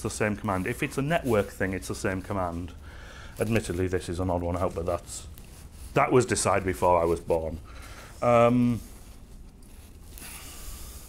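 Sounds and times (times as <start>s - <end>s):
faint rustling hiss: 0.0s - 11.0s
low steady room hum: 0.0s - 11.0s.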